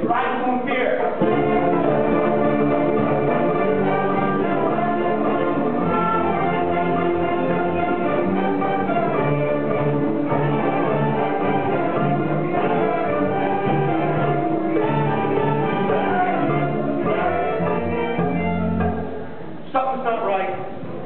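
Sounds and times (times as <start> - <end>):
clarinets and violins playing: 1.2 - 19.1.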